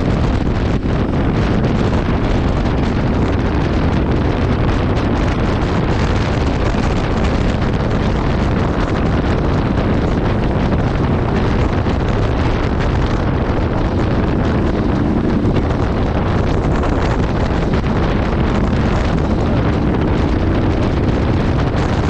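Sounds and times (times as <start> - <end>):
motorcycle engine: 0.0 - 22.0
wind buffeting microphone: 0.0 - 22.0.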